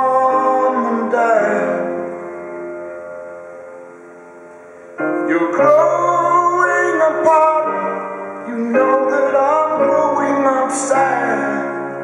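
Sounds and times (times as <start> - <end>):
person singing: 0.0 - 2.2, 5.1 - 12.0
rock band with piano: 0.0 - 12.0.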